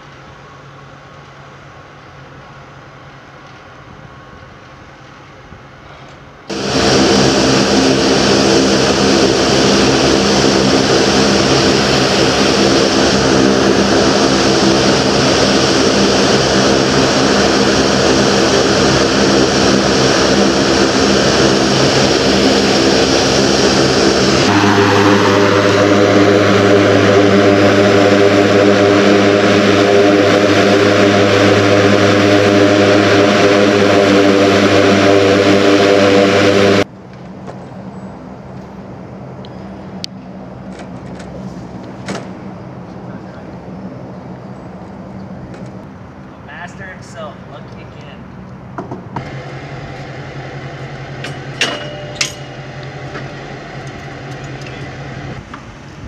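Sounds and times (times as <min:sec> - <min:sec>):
turboprop engine whine and drone: 0:00.0 - 0:56.0.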